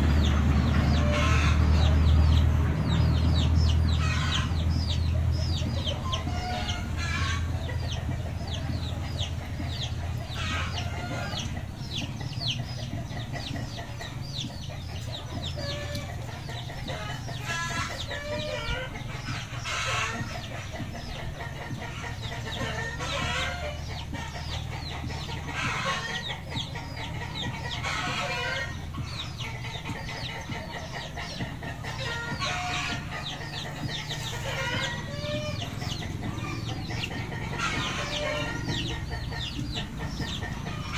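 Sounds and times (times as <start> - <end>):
chickens clucking: 0.0 - 40.9.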